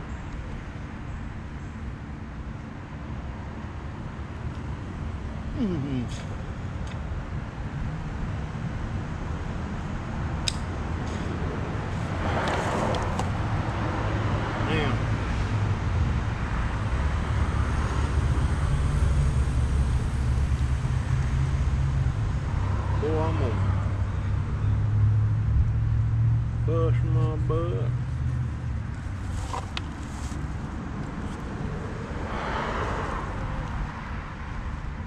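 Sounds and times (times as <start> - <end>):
motor vehicle engine rumble: 27.9 - 35.0
conduit scraping through soil and leaves: 29.0 - 31.5.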